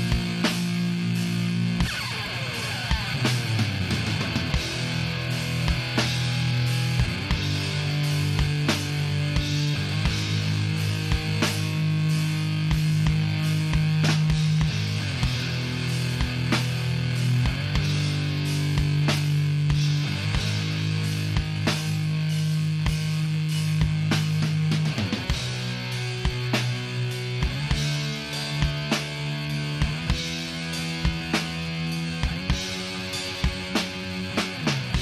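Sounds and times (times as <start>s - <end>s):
distorted electric guitars and bass: 0.0s - 35.0s
drum and cymbal hits: 0.0s - 35.0s.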